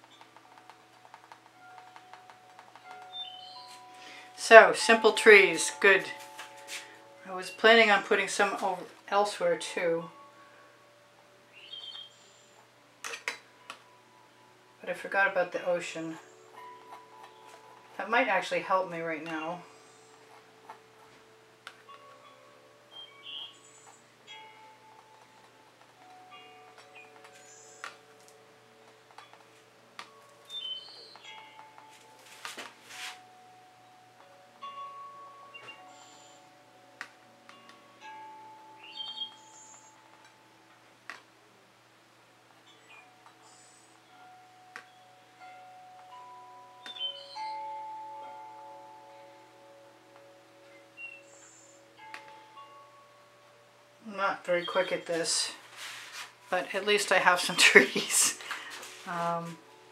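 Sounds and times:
chime-like ringing notes: 0.0 - 41.6, 42.2 - 59.9.

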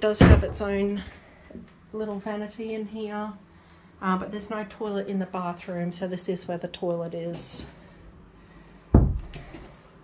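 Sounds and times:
heavy wooden thud: 9.0 - 9.4.

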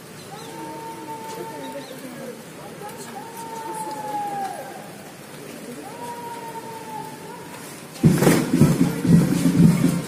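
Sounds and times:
rain hiss: 0.0 - 10.0.

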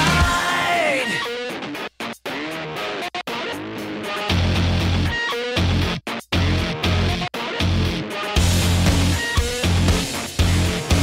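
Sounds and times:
rock music with electric guitar: 0.0 - 11.0.

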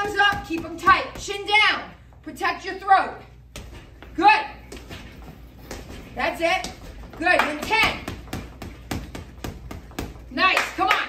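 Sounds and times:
boxing gloves punching heavy bag: 0.0 - 1.6, 4.7 - 10.6.

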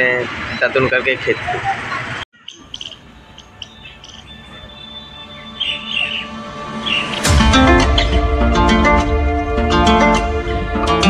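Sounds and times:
high bird chirps: 2.3 - 7.3
soft music: 3.4 - 11.0.

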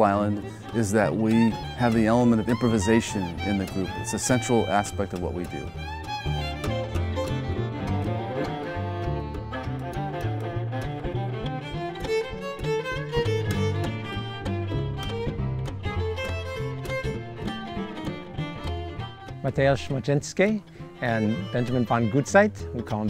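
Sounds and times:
string quartet playing jazz: 0.0 - 23.0.

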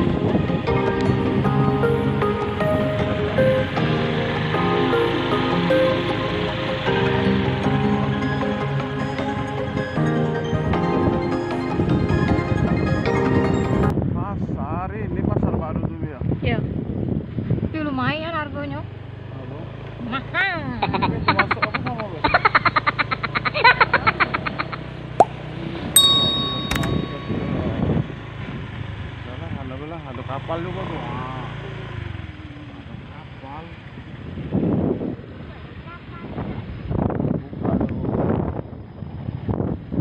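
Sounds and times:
wind buffeting microphone: 0.0 - 3.9, 10.6 - 18.9, 25.8 - 29.1, 34.0 - 40.0
vehicle engine humming: 0.0 - 14.0, 16.7 - 40.0.

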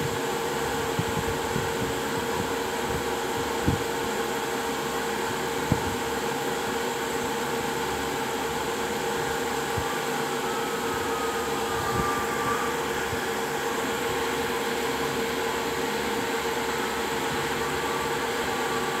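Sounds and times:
steady droning hum: 0.0 - 19.0.

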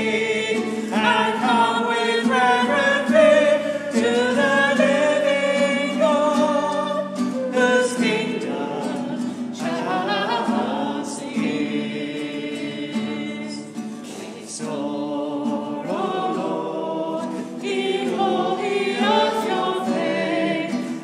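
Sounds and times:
woman singing a hymn: 0.0 - 21.0.

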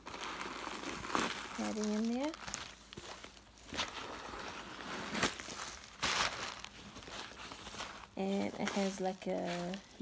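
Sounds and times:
tissue paper rustling: 0.0 - 10.0.

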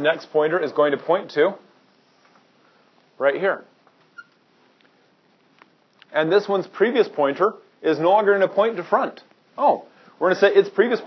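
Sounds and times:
marker squeaking on whiteboard: 4.0 - 4.5.

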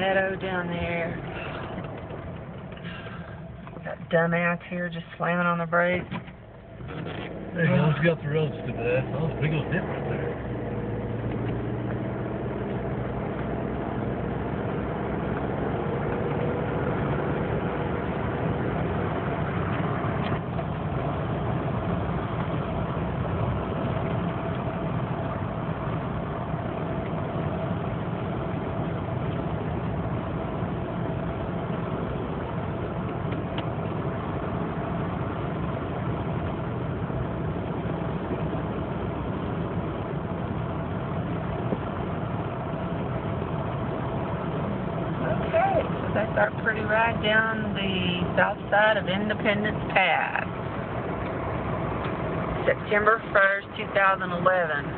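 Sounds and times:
vehicle engine and road noise: 0.0 - 54.9.

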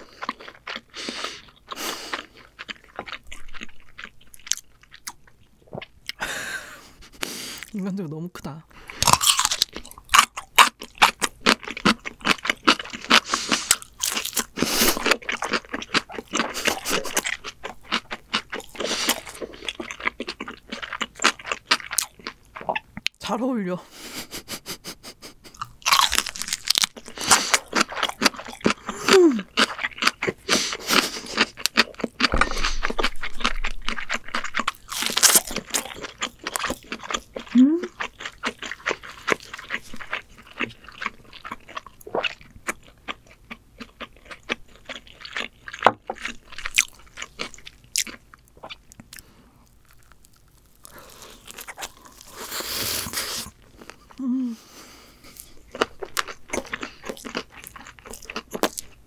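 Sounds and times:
crunchy chewing: 0.0 - 6.2, 8.8 - 23.2, 25.4 - 59.0
person humming: 28.9 - 29.5, 37.6 - 37.9, 54.2 - 54.7.

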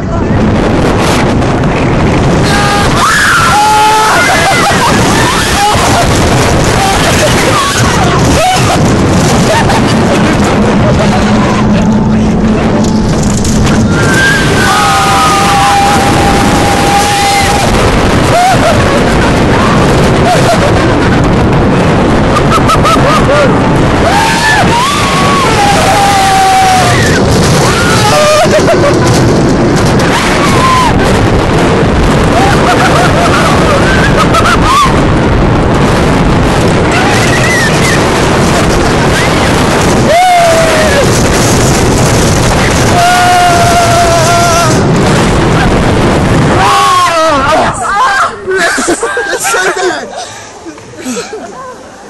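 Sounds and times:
wind blasting microphone: 0.0 - 51.3
riders screaming: 2.2 - 11.8, 13.2 - 21.4, 22.0 - 50.0.

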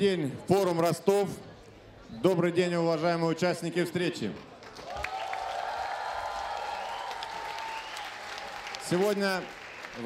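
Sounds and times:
audience applauding: 4.6 - 10.0.

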